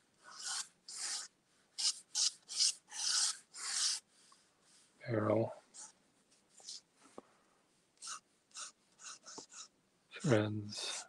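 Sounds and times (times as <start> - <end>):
pen scratching across paper: 0.3 - 4.0, 8.0 - 9.7.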